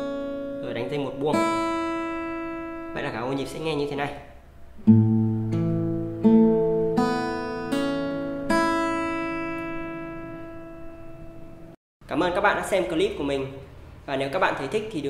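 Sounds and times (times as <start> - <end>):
acoustic guitar fingerpicking: 1.3 - 3.0, 4.4 - 11.7.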